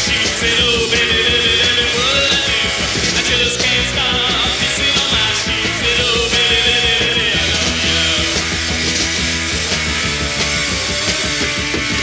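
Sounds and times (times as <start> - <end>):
punk rock band playing: 0.0 - 12.0
regular drum beat: 0.0 - 12.0.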